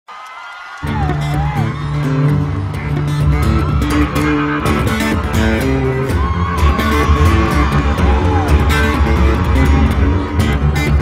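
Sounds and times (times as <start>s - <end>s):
upright bass notes: 0.9s - 11.0s
acoustic guitar strumming: 1.1s - 11.0s.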